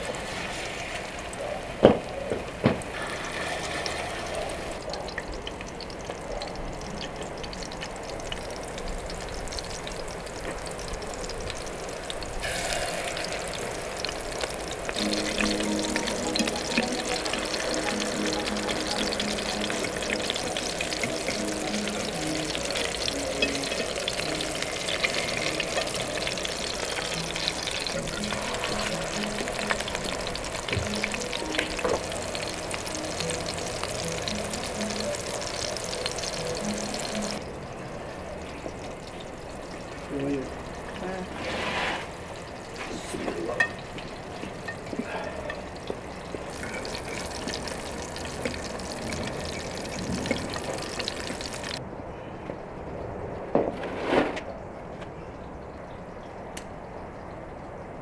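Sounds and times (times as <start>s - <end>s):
meat sizzling in hot oil: 2.7s - 37.4s, 38.7s - 51.8s
background music: 12.4s - 41.3s.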